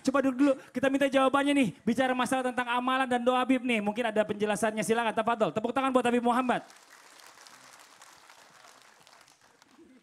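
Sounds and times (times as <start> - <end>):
faint audience applause: 6.6 - 10.0.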